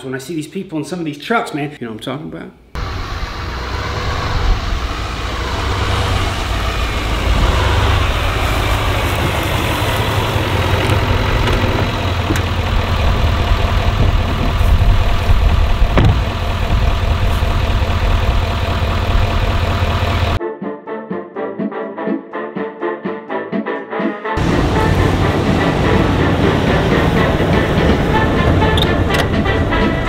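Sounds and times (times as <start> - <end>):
pickup truck engine idling: 2.8 - 20.4, 24.4 - 30.0.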